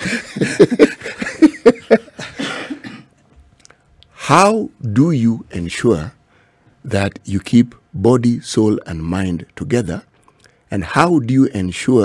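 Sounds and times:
person coughing: 2.2s - 3.2s.

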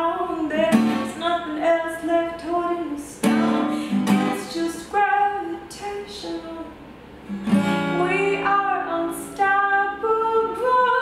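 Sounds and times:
acoustic guitar ringing: 0.0s - 6.5s, 7.2s - 11.0s.

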